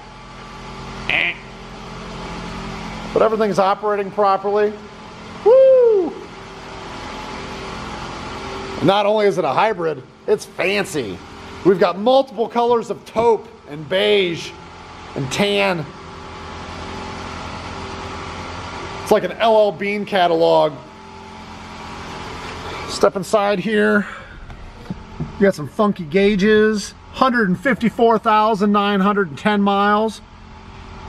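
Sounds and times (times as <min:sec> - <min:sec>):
man talking: 0:03.2 - 0:04.8, 0:08.8 - 0:14.6, 0:15.2 - 0:15.9, 0:19.1 - 0:20.8, 0:22.8 - 0:24.4, 0:25.2 - 0:30.2
car running with low hum: 0:20.3 - 0:31.0.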